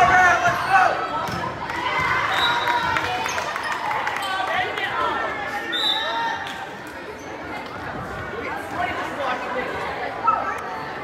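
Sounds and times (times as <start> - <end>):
players and spectators calling out: 0.0 - 11.0.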